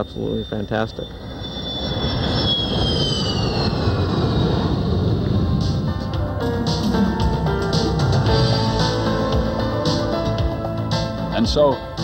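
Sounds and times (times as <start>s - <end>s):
jet passing low: 0.0s - 12.0s
music: 5.2s - 12.0s.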